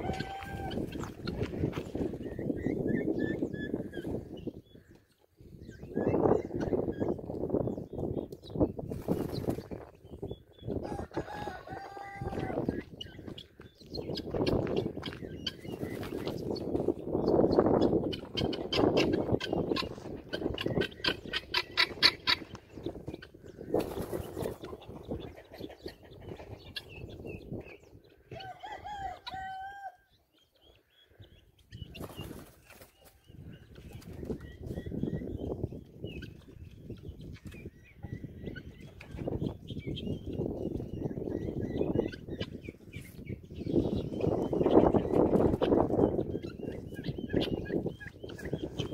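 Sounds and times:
guinea fowl calling: 0.0 - 5.2, 10.7 - 16.6, 17.5 - 23.7, 28.1 - 31.3, 43.9 - 48.9.

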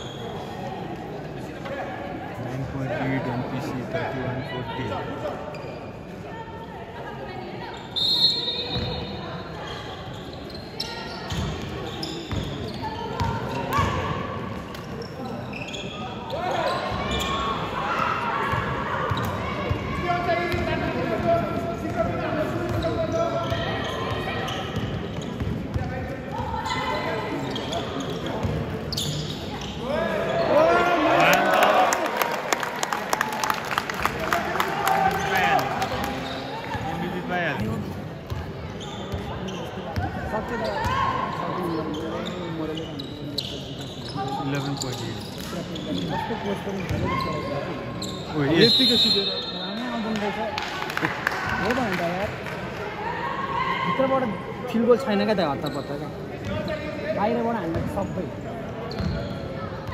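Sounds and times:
basketball bouncing on court: 13.2 - 14.0, 24.8 - 26.5, 57.6 - 58.0
people clapping: 31.2 - 36.2, 50.0 - 52.8.

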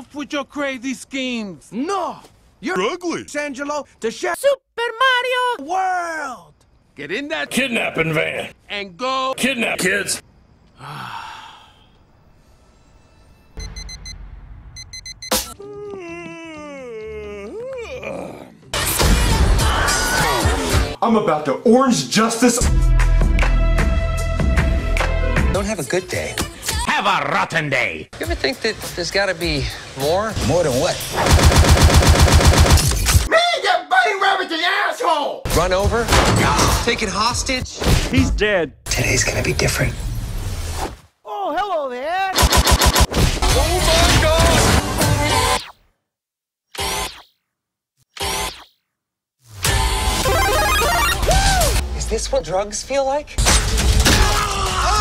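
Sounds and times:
automatic gunfire burst: 31.2 - 33.2, 42.4 - 43.1.

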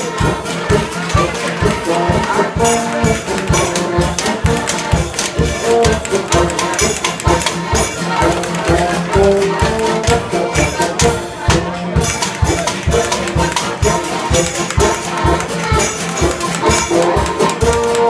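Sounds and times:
accordion melody: 0.0 - 18.0
clacking folk percussion: 0.0 - 18.0
tuba bass: 0.0 - 18.0.

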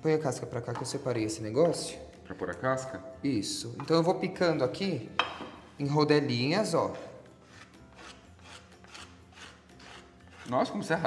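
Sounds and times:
knife cutting on wooden board: 7.0 - 10.7.

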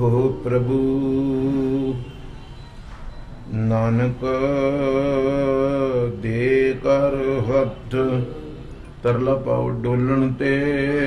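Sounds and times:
man chanting into microphone: 0.0 - 2.1, 3.5 - 11.0.

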